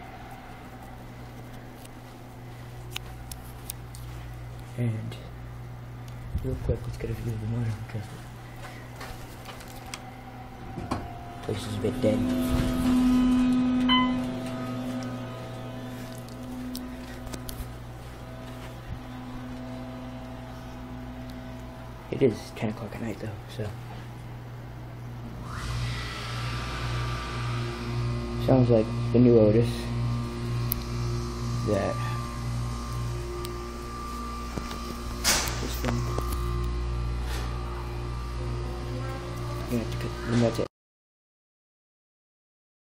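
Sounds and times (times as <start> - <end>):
elevator humming: 0.0 - 40.5
brief high tone: 11.0 - 17.3.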